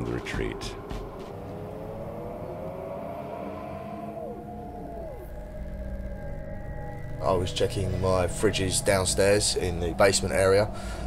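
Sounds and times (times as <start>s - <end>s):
low rumble drone: 0.0s - 11.0s
wailing tones: 0.0s - 11.0s.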